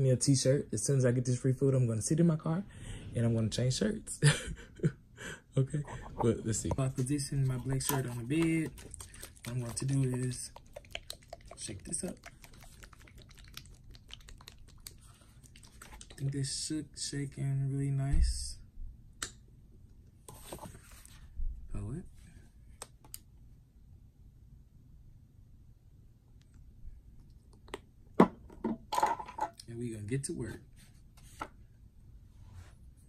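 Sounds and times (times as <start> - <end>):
paint bottle shaken rattling: 5.8 - 16.3.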